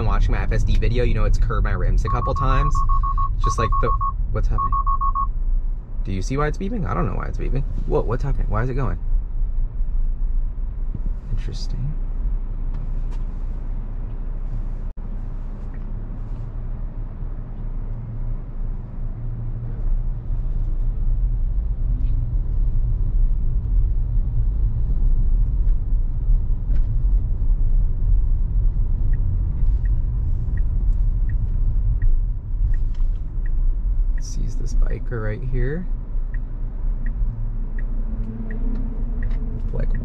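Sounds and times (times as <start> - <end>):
road and tyre rumble in car: 0.0 - 40.0.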